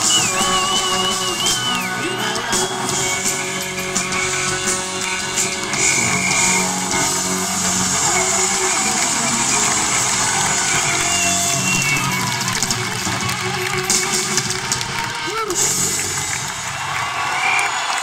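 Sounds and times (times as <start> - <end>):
electric guitars: 0.0 - 18.0
live rock band playing: 0.0 - 18.0.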